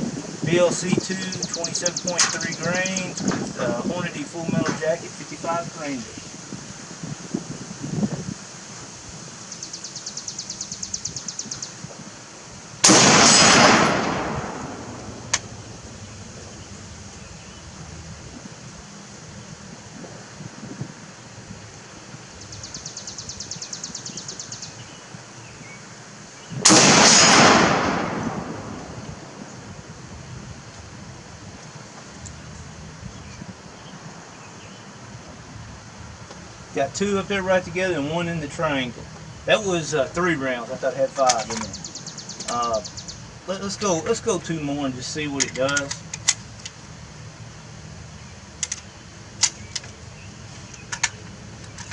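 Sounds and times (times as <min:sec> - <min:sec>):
rifle shots: 0:12.8 - 0:15.5, 0:26.6 - 0:29.0.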